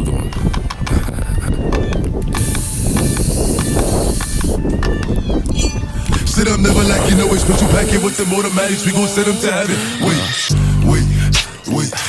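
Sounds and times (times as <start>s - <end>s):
wind rumbling on microphone: 0.0s - 9.6s
high hiss: 2.4s - 4.6s, 6.2s - 10.6s.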